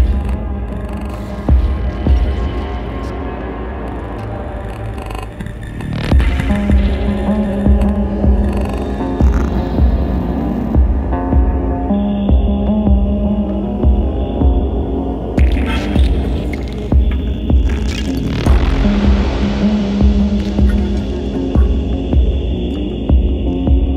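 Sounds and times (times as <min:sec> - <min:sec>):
low drone: 0:00.0 - 0:23.9
synth bass pulse: 0:06.0 - 0:23.9.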